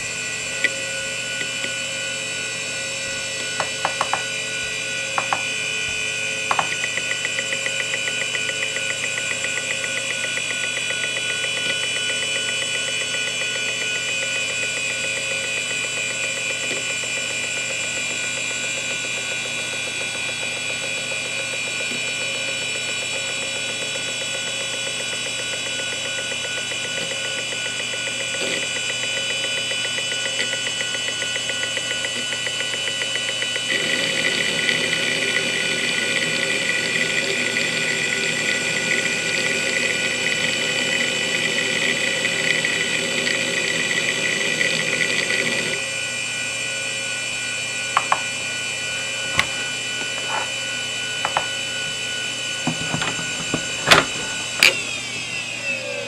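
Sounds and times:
hard drive whine: 0.0s - 56.0s
hard drive ticking: 6.5s - 11.3s.

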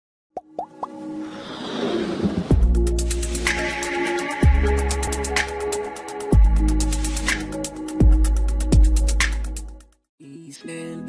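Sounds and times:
music: 0.4s - 11.0s
whoosh: 1.2s - 3.7s.

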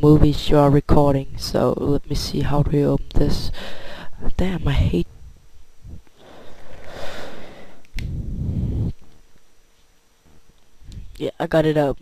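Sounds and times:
low rumble: 4.8s - 6.1s, 8.0s - 9.0s.

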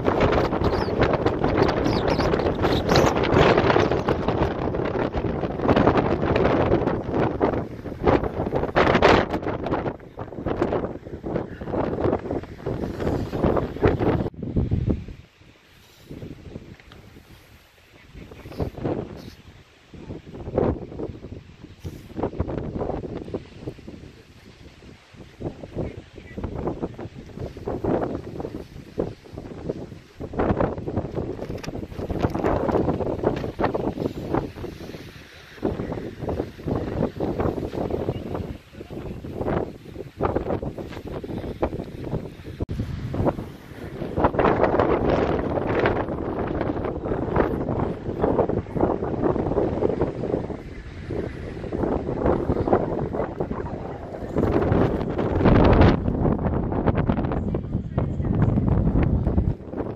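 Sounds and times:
strong wind buffeting microphone: 0.0s - 59.9s.

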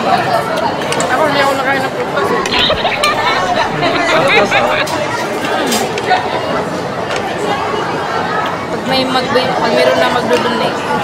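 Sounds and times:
indoor chatter of voices: 0.0s - 11.0s.

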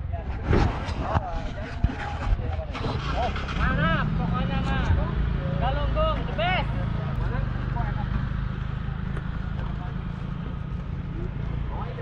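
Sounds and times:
people's voices: 0.0s - 12.0s
motor scooter engine rumble: 6.7s - 12.0s.

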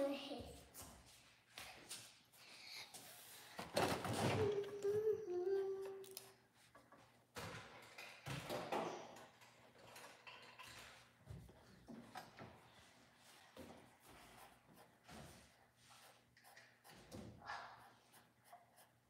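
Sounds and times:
person humming: 4.4s - 6.2s.

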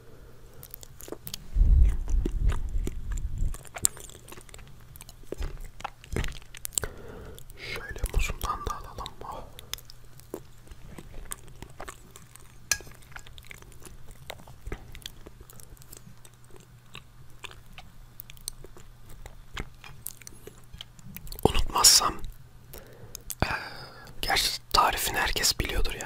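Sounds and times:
chewing with wet mouth clicks: 0.6s - 23.4s.

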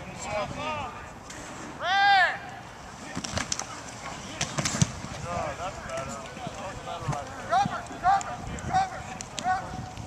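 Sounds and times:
football pads and helmets clacking: 3.0s - 10.0s.

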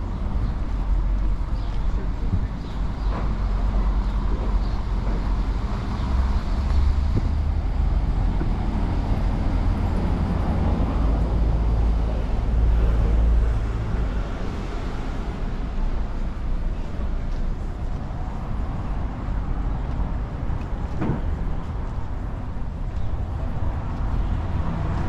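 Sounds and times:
street traffic rumble: 0.0s - 25.0s.

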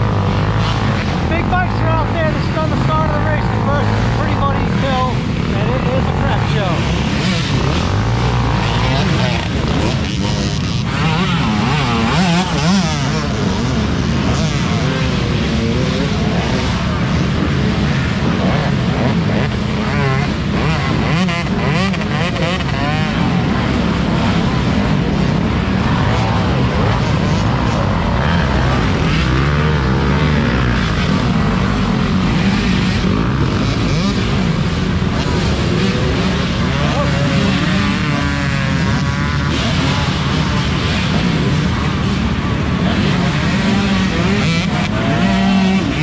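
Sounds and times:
dirt bike engines revving: 0.0s - 46.0s.

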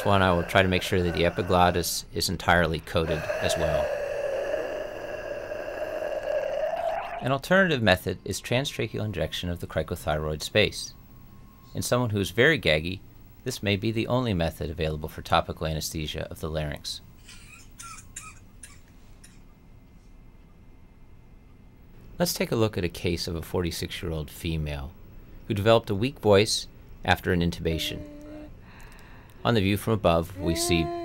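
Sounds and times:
gargling voice: 0.0s - 1.8s, 3.0s - 7.3s
faint short coughs: 17.3s - 18.9s.

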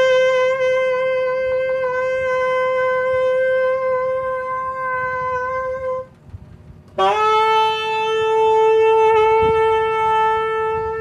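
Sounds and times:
saxophone holding a note: 0.0s - 6.2s, 6.9s - 11.0s.

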